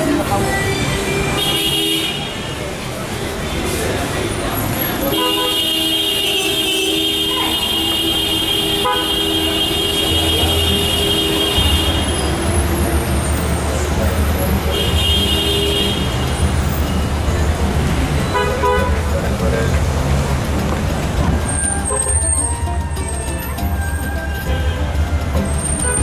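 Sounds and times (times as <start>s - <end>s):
car engines passing: 0.0s - 26.0s
people talking: 0.0s - 26.0s
car horn honking: 0.8s - 2.6s, 5.0s - 13.4s, 14.6s - 17.0s, 18.2s - 19.1s, 21.5s - 26.0s.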